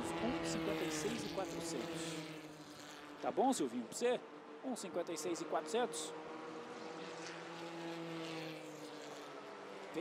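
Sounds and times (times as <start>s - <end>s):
racing car engine humming: 0.0s - 10.0s.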